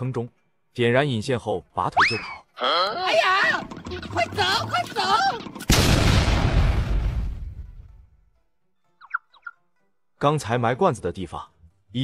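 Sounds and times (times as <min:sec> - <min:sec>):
cartoon explosion with rumble: 0:05.7 - 0:07.8.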